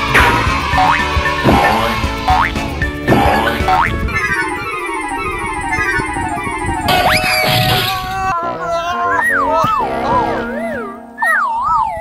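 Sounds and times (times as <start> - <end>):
upbeat children's music: 0.0 - 4.4
cartoon boing spring effect: 3.1 - 4.4.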